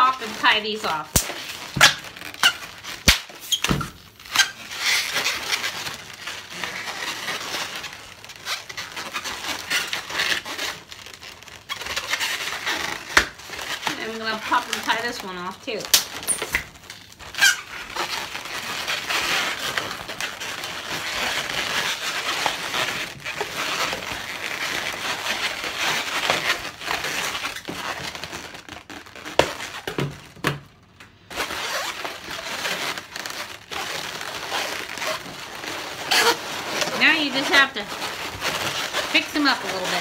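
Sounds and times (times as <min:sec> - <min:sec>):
balloons rubbing and squeaking: 0:00.0 - 0:40.0.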